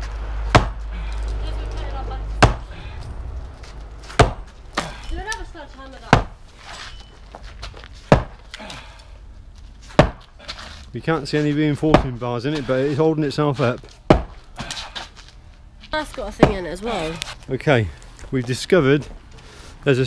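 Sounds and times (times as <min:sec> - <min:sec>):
sledgehammer hitting brick: 0:00.5 - 0:00.8, 0:02.4 - 0:02.7, 0:04.1 - 0:05.0, 0:08.1 - 0:08.4, 0:09.9 - 0:10.3, 0:14.1 - 0:14.4.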